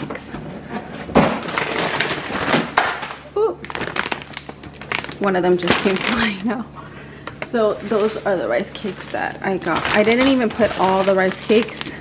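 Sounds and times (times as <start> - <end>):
plastic food bag crinkling: 1.2 - 6.6, 7.5 - 12.0
sharp crackles: 1.5 - 6.4.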